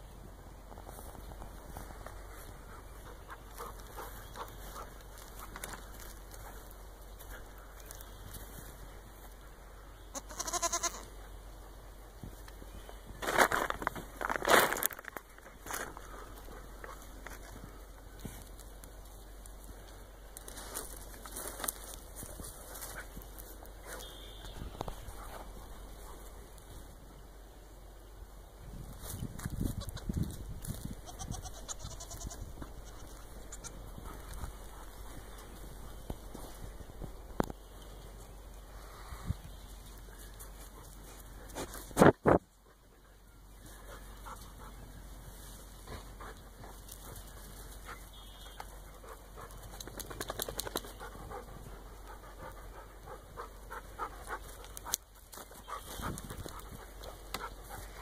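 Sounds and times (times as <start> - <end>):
goat bleating: 10.1 - 11.1, 31.0 - 33.8
rustling: 12.3 - 27.0.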